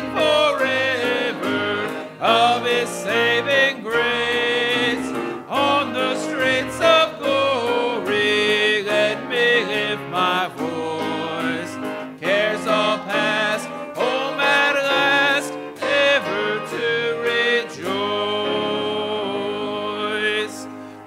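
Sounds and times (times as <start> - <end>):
congregation singing a hymn: 0.0 - 21.0
instrumental accompaniment: 0.0 - 21.0.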